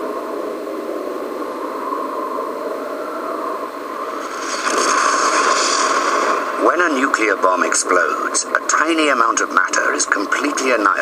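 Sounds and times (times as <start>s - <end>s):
explosion roar rumble: 4.1s - 7.4s.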